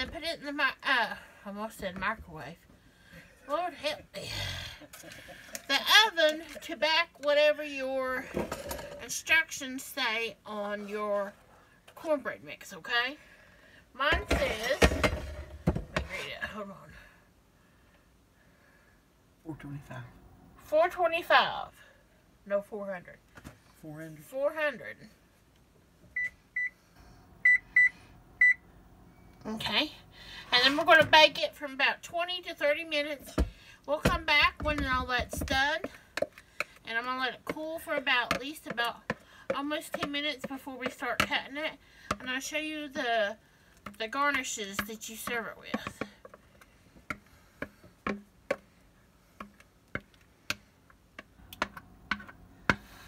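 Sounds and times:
faint steady hum: 0.0s - 53.0s.

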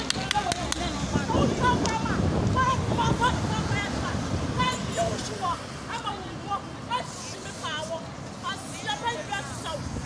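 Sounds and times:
people talking: 0.0s - 9.9s
passing traffic: 0.0s - 10.0s.

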